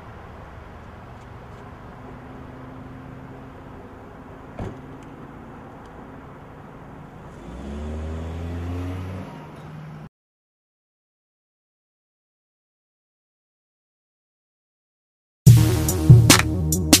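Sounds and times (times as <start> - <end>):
car engine idling and revving: 0.0 - 10.1.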